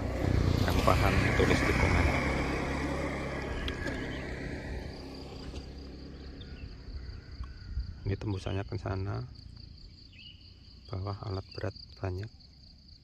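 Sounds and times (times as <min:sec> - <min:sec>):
high insect drone: 0:00.0 - 0:13.0
vehicle engine hum: 0:00.0 - 0:13.0.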